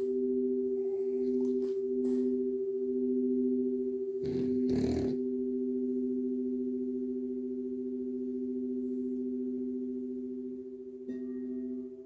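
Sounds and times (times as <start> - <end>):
crystal singing bowls ringing: 0.0 - 12.0.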